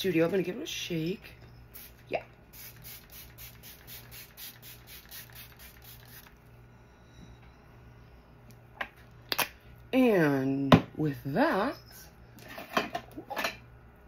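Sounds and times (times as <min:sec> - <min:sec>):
spray bottle misting: 0:01.8 - 0:06.3.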